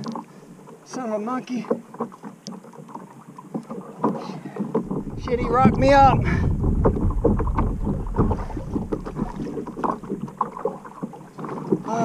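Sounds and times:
small knocks and splashes: 0.0 - 12.0
water lapping against kayak hull: 0.0 - 12.0
wind rumbling on microphone: 4.7 - 11.2.

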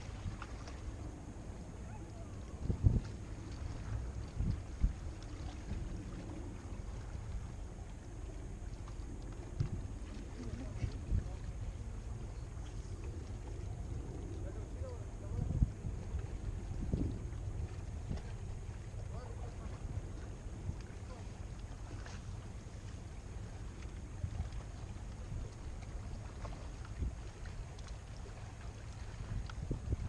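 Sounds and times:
wind buffeting microphone: 0.0 - 30.0
faint clicks: 26.8 - 28.2.

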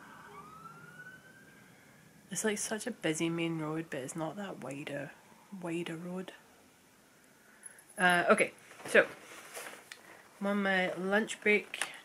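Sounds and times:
faint fire engine siren: 0.0 - 2.3.

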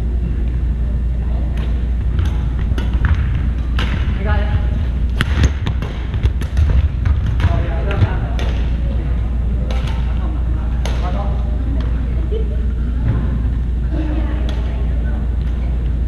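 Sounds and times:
low hum: 0.0 - 16.0
voices in hall: 0.0 - 16.0
racket striking shuttlecock: 1.6 - 4.2, 4.9 - 8.8, 9.6 - 10.2, 10.8 - 11.2.

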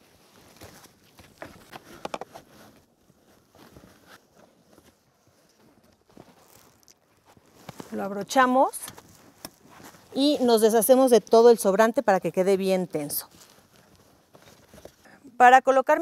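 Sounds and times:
seat belt webbing rustling: 0.3 - 11.7, 12.9 - 15.0.

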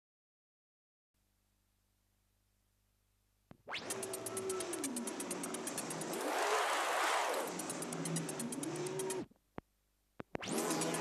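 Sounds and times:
record slowing down: 3.4 - 11.0
vinyl scratching: 3.6 - 9.3, 10.2 - 11.0.

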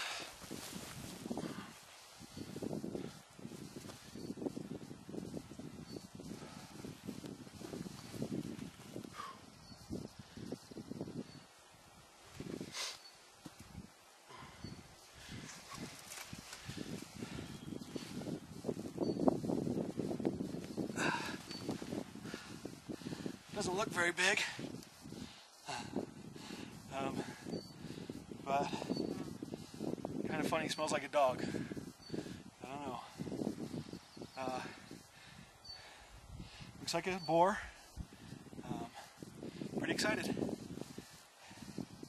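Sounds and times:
rustling on dry forest ground: 0.0 - 42.0.

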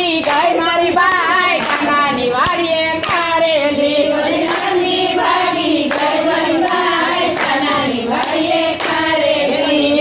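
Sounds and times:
women singing folk song: 0.0 - 10.0
hand claps: 0.2 - 3.4, 4.4 - 4.8, 5.8 - 9.2.

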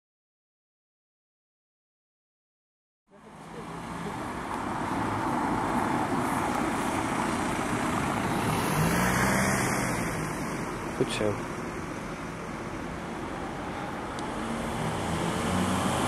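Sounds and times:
car driving past: 3.4 - 10.8, 11.7 - 16.0.

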